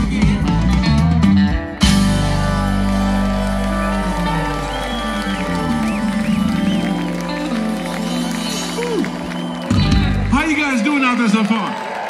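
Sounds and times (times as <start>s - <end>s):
organ and bass held: 0.0s - 10.8s
rock band final chord ringing: 1.8s - 10.3s
crowd cheering and whistling: 1.8s - 12.0s.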